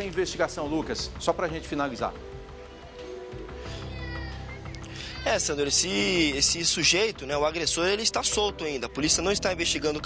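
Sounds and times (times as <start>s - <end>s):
background music sustained tones: 0.0s - 10.0s.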